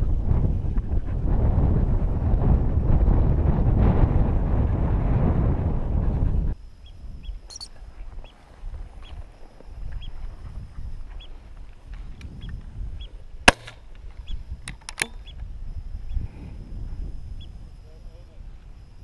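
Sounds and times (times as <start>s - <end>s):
wind buffeting microphone: 0.0s - 19.0s
faint short high chirps: 7.2s - 7.8s
sharp crack: 13.4s - 13.8s.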